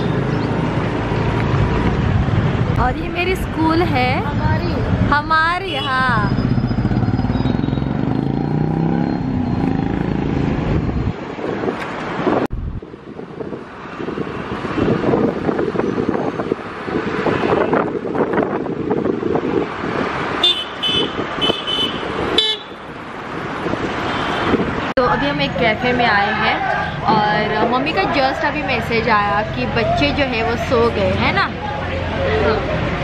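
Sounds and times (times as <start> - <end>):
road traffic noise: 0.0 - 33.0
engine speeding up: 6.2 - 11.1
vehicle horn tooting: 20.4 - 22.8.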